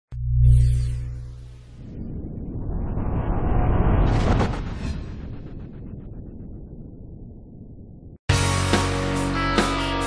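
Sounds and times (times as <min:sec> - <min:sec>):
cinematic rumble: 0:00.1 - 0:08.2.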